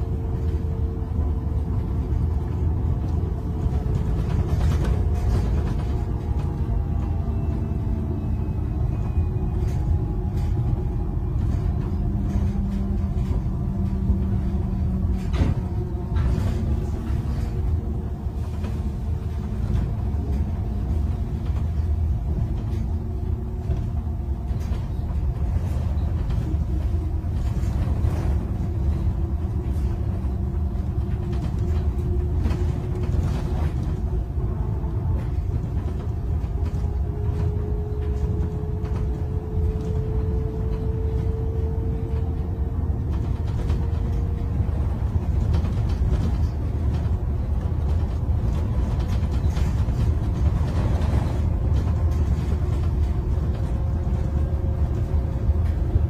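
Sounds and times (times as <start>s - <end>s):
bus cabin rumble: 0.0s - 56.0s.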